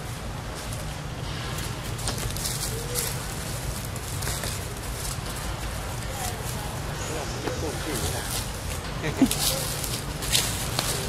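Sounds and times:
faint indistinct voices: 0.4 - 11.0.

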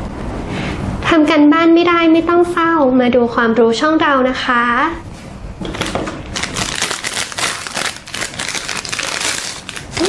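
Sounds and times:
plastic wrapper crinkling: 5.7 - 10.0.

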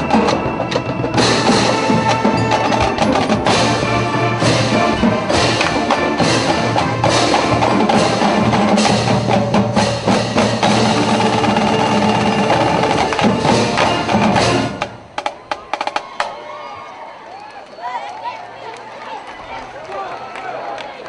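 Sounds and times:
marching band playing: 0.0 - 16.4
crowd chatter and calls: 0.0 - 21.0.

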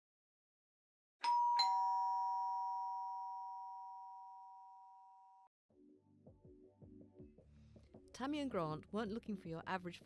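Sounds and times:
two-tone doorbell chime: 1.2 - 5.5.

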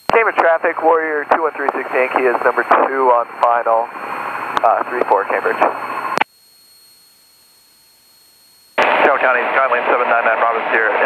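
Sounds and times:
pilot radio call: 0.1 - 6.2, 8.8 - 11.0
radio headset hiss: 0.1 - 6.3, 8.8 - 11.0
radio click: 1.3 - 3.0, 4.5 - 6.3.

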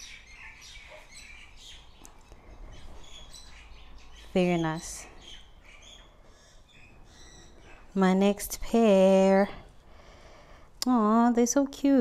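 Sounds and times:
birds chirping: 0.0 - 11.6.

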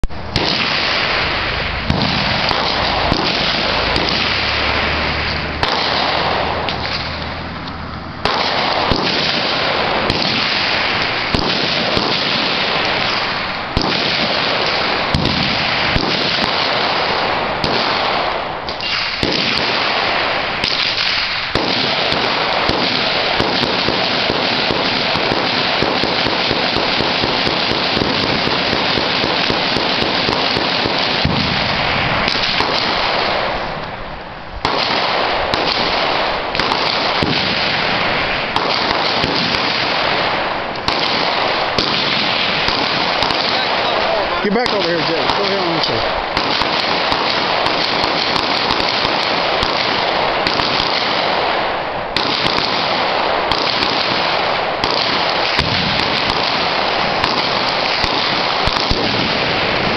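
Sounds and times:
massed rapid gunfire: 0.3 - 7.2, 8.2 - 33.7, 34.6 - 51.6, 52.2 - 59.9.

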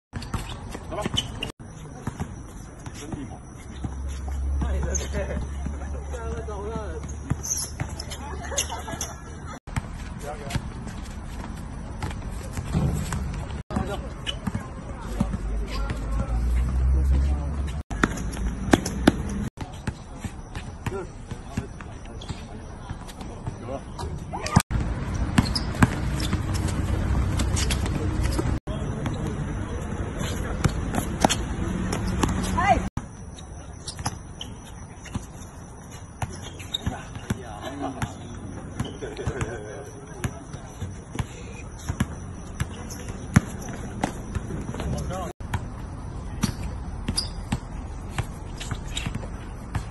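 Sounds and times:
voices: 0.2 - 49.9
basketball bouncing: 9.7 - 16.8, 17.6 - 23.6, 24.4 - 29.3, 30.6 - 35.4, 36.1 - 39.6, 40.2 - 49.9.

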